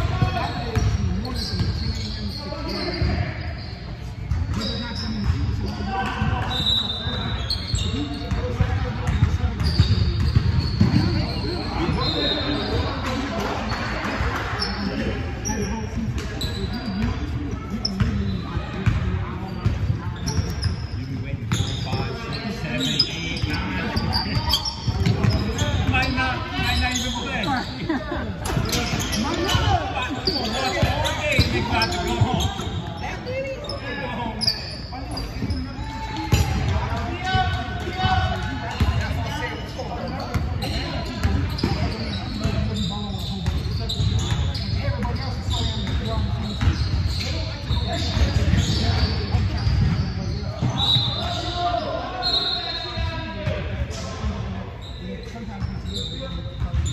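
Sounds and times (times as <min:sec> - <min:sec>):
players calling out: 0:21.6 - 0:53.1.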